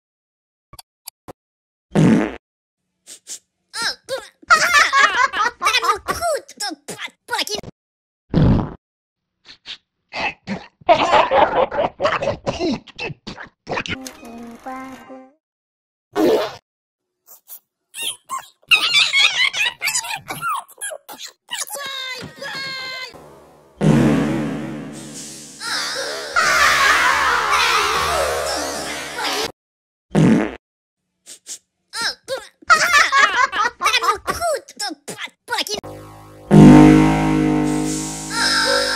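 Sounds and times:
cartoon fart sound: 1.9 - 2.4, 8.3 - 8.8, 16.2 - 16.6, 23.8 - 25.4, 30.1 - 30.6, 35.8 - 38.9
cartoon voice giggling: 3.8 - 6.2, 18.0 - 20.6.

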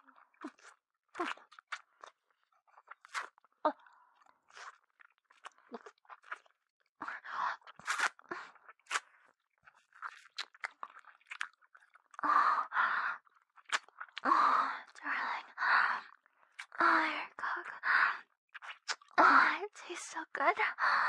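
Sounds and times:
wet licking and smacking: 0.4 - 3.5, 4.2 - 6.7, 7.6 - 12.2, 13.2 - 14.2, 18.5 - 19.2.

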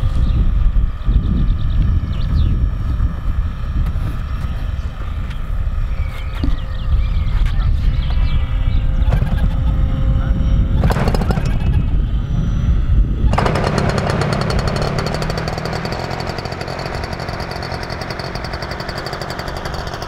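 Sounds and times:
model aircraft motor whine: 0.0 - 20.0
wind buffeting microphone: 0.0 - 20.0.

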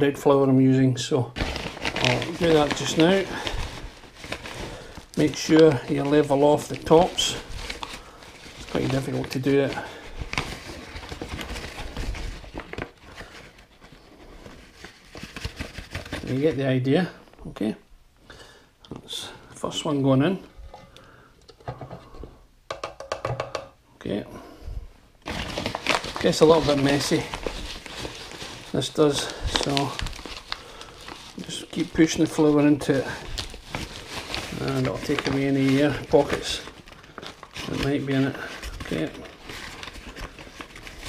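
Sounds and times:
plastic bag crinkling: 1.4 - 16.6, 25.2 - 41.0.

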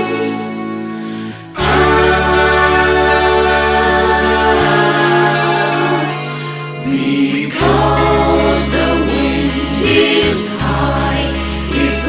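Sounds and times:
voices singing in harmony: 0.0 - 12.0.

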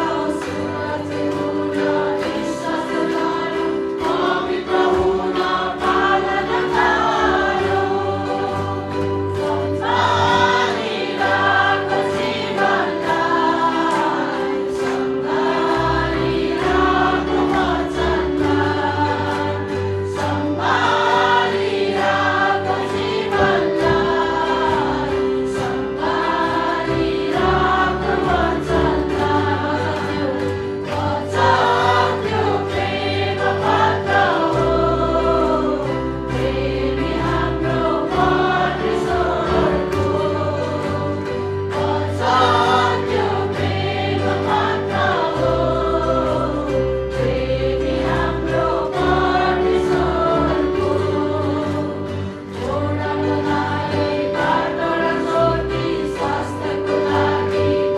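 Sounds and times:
women singing worship song: 0.0 - 57.9.

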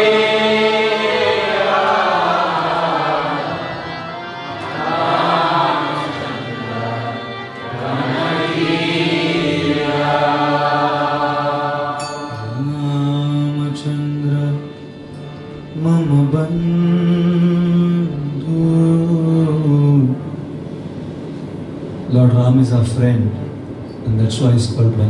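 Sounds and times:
harmonium: 0.0 - 20.2.

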